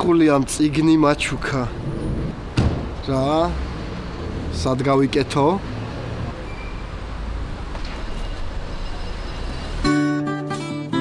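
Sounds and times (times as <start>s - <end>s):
low traffic rumble: 0.0s - 9.9s
guitar music: 9.8s - 11.0s.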